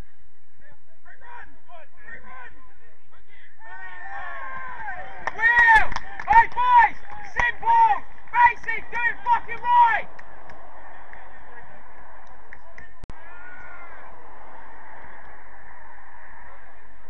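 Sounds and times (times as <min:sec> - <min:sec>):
players shouting: 0:03.6 - 0:17.0.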